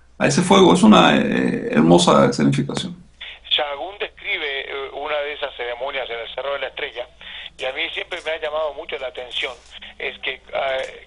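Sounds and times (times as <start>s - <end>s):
person talking over phone: 3.2s - 11.0s.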